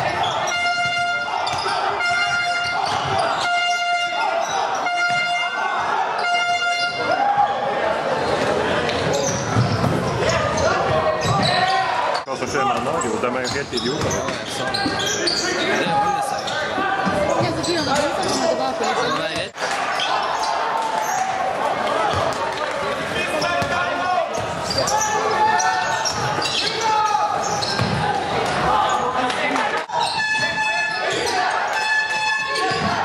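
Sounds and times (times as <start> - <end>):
players and spectators voices: 0.0 - 33.0
basketball bouncing on court: 0.2 - 3.8, 8.4 - 11.6, 27.4 - 28.7.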